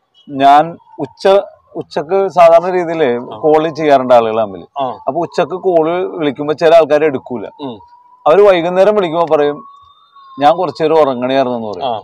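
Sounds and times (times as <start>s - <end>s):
man speaking: 0.3s - 9.7s, 10.4s - 12.0s
faint high tone: 7.5s - 12.0s.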